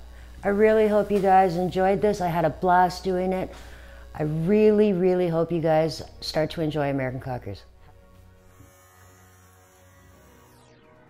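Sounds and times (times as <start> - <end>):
electric clipper buzzing: 0.0 - 11.0.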